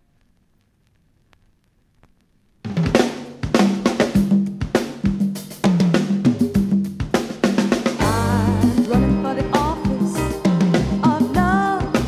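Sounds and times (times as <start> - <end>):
vinyl soft clicks: 0.0 - 2.7
vinyl surface noise: 0.0 - 12.0
band with drums and bass: 2.7 - 12.0.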